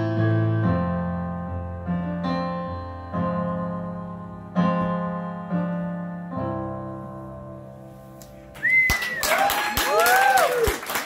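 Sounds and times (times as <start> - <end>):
loud sliding whistle: 8.6 - 9.4
audience applause: 8.6 - 11.0.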